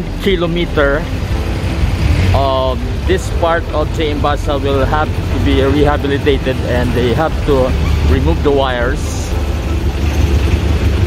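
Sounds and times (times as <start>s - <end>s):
vehicle engines passing: 0.0s - 11.0s.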